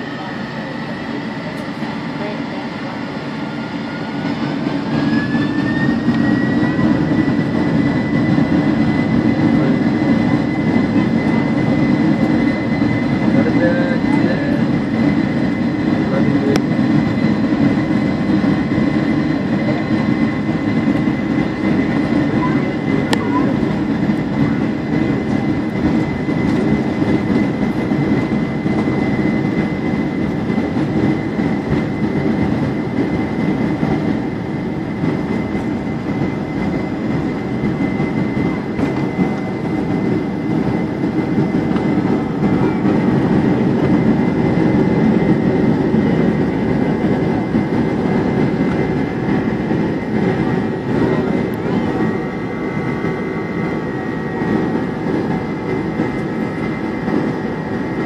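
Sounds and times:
jet engine rumble: 0:00.0 - 0:58.0
jet engine whine: 0:00.0 - 0:58.0.

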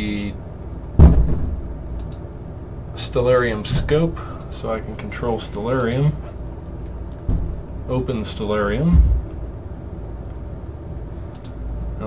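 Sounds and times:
heavy bang in building: 0:01.0 - 0:01.7.

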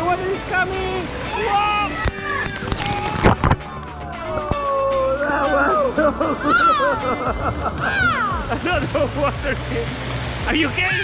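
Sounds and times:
water crashing from tipping bucket: 0:00.0 - 0:04.8, 0:06.2 - 0:11.0
water splashing: 0:00.0 - 0:11.0.

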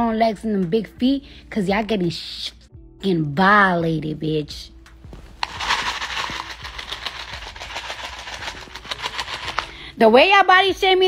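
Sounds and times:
cup handling noise: 0:05.3 - 0:09.8.

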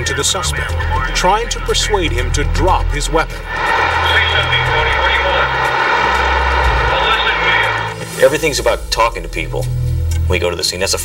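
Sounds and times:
low hum: 0:02.1 - 0:08.6
loud engine drone: 0:02.2 - 0:08.6.

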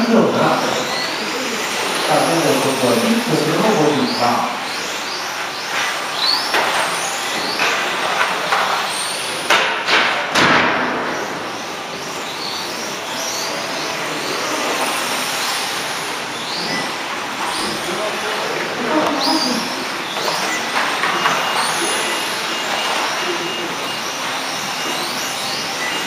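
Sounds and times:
hall noise: 0:00.0 - 0:26.0
rc car motors whining: 0:00.0 - 0:26.0.

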